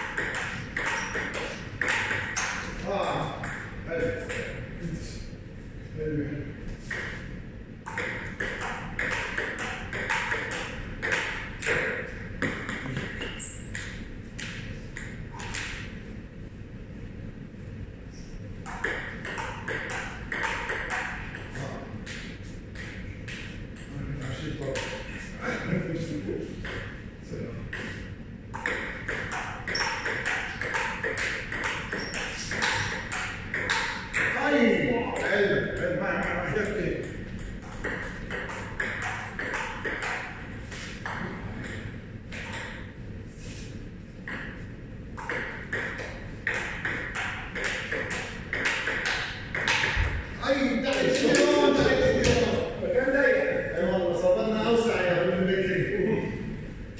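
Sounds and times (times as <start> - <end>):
ball bouncing on table: 0.0 - 4.6, 7.9 - 15.8, 18.6 - 23.5, 26.6 - 26.9, 27.7 - 34.4, 37.3 - 42.9, 45.2 - 50.2
ping pong ball hitting paddles: 0.0 - 4.6, 6.8 - 16.0, 18.6 - 25.3, 26.5 - 27.0, 27.7 - 42.9, 44.2 - 44.6, 45.2 - 50.2.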